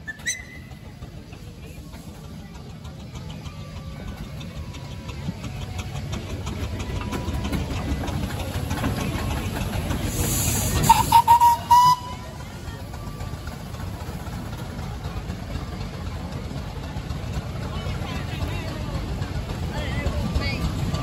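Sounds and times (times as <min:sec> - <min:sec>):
steam traction engine rumbling: 0:00.0 - 0:21.0
steam hissing: 0:00.1 - 0:21.0
steam whistle toots: 0:10.7 - 0:12.3.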